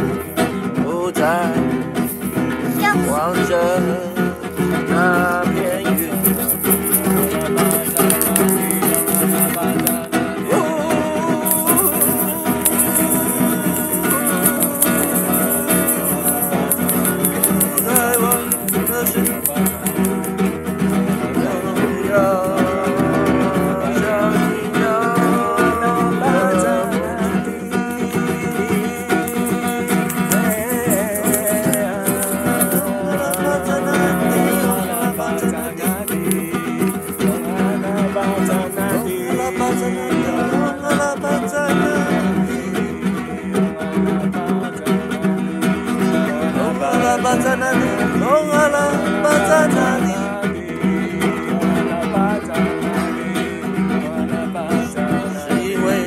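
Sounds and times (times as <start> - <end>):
plucked guitar: 0.0 - 56.0.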